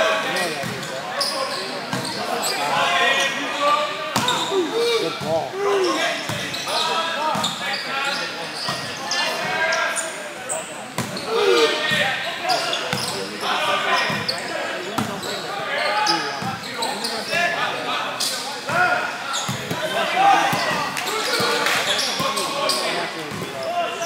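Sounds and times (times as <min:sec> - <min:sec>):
spectator chatter: 0:00.0 - 0:24.0
players shouting: 0:02.3 - 0:07.2.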